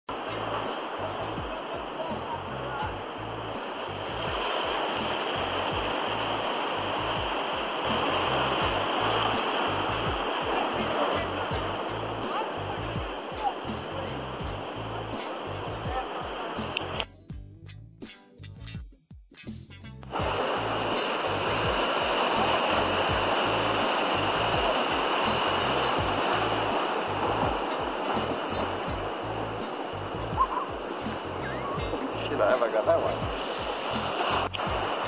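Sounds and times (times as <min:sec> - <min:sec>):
music with steady beat: 0:00.1 - 0:35.0
surf breaking: 0:00.2 - 0:17.0, 0:20.1 - 0:35.0.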